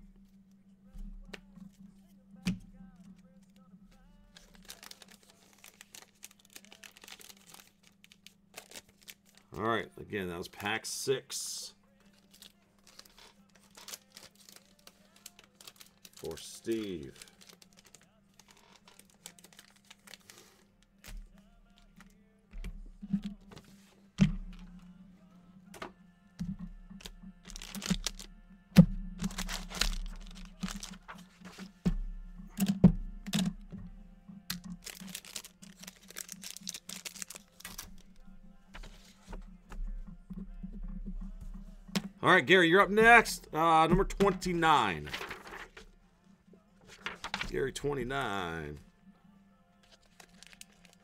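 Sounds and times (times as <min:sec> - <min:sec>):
wrappers rustling and crinkling: 0:03.1 - 0:09.6, 0:11.9 - 0:21.9, 0:26.8 - 0:28.4, 0:29.2 - 0:31.8, 0:34.5 - 0:39.6, 0:44.0 - 0:46.0, 0:46.8 - 0:47.6, 0:49.8 - 0:51.0.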